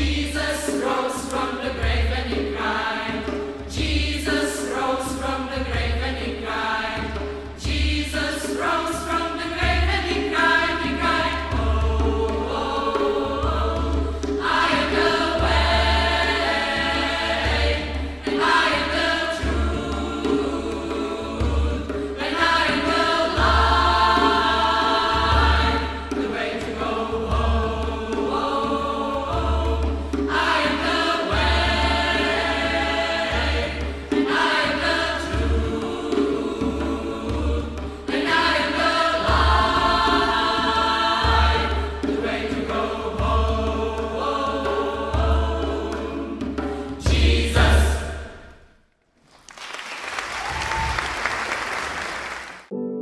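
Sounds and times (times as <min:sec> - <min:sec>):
mixed choir singing: 0:00.0 - 0:48.5.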